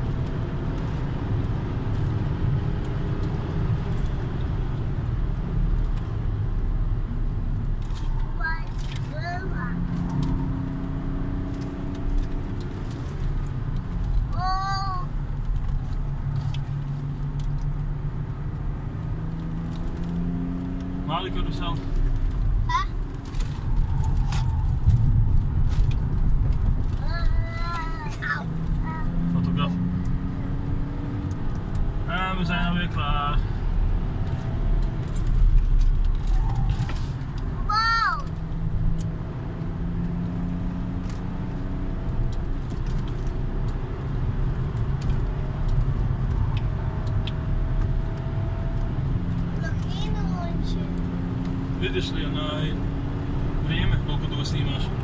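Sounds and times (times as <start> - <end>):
car engine revving: 0.0 - 14.4, 15.1 - 55.0
road noise inside car: 0.0 - 55.0.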